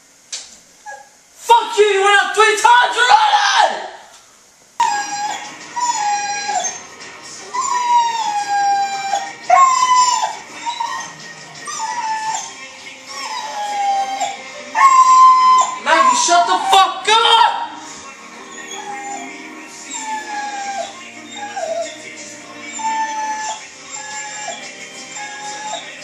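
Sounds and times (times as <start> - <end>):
dog whining: 0.8 - 1.2, 4.8 - 16.9, 18.3 - 26.0.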